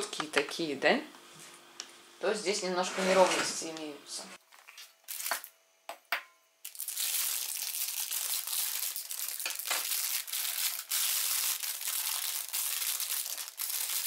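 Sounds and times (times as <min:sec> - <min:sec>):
plastic bag crinkling: 0:04.5 - 0:05.5, 0:06.7 - 0:14.0.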